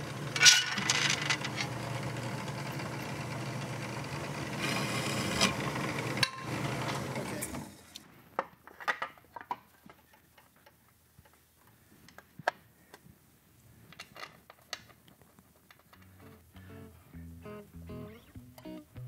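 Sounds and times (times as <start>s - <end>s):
milling machine humming: 0.0s - 7.8s.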